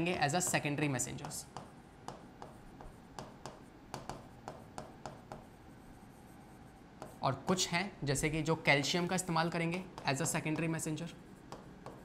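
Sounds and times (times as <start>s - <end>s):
writing tool strokes on board: 0.4s - 7.2s, 10.0s - 12.0s.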